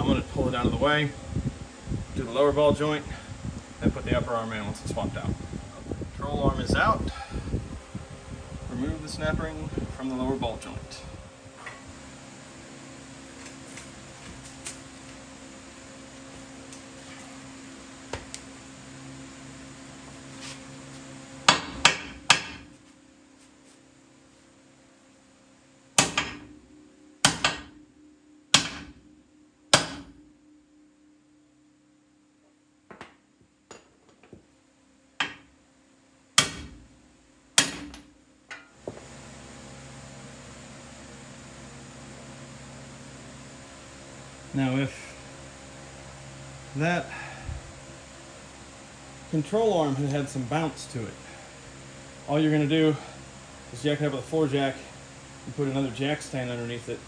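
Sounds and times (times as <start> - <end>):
steady hum: 0.0 - 57.0
hammer striking steel: 28.5 - 28.9, 36.4 - 36.8, 37.6 - 38.0.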